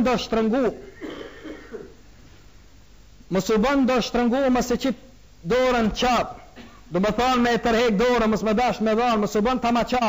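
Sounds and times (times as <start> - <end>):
man clearing throat: 0.8 - 2.0, 6.4 - 6.9.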